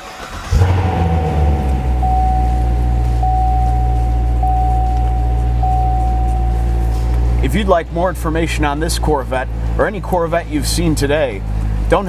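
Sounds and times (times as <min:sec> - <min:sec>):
car engine starting and idling: 0:00.0 - 0:12.0
thin high stepping tone: 0:00.9 - 0:07.3.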